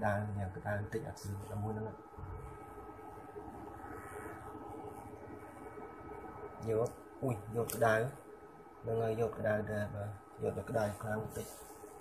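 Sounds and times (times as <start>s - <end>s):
electrical hum: 0.0s - 12.0s
thin high whine: 0.0s - 12.0s.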